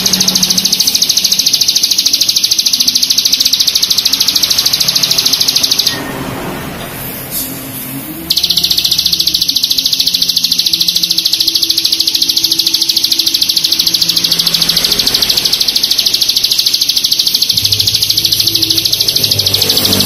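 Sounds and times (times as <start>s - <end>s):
soft background music: 0.0s - 20.0s.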